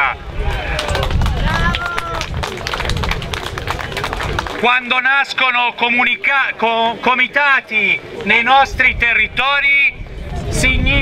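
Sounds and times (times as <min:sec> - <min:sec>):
wind rumble on microphone: 0:00.0 - 0:04.6, 0:08.6 - 0:11.0
crowd applauding: 0:00.6 - 0:05.0.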